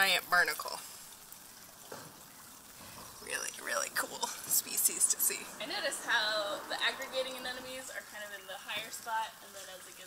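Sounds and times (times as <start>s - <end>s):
seawater trickling among rocks: 0.0s - 10.0s.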